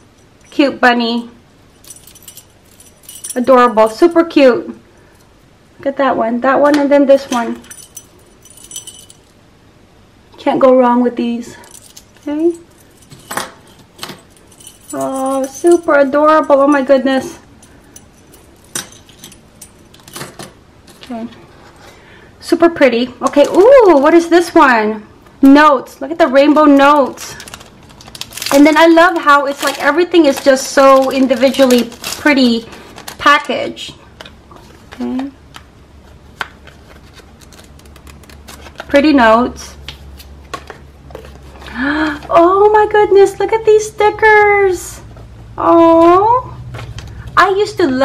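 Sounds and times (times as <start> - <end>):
metal keychains clinking: 1.8 - 4.3, 7.3 - 9.3, 11.6 - 20.5, 26.8 - 32.5
paper ticks and rustles: 36.3 - 39.0.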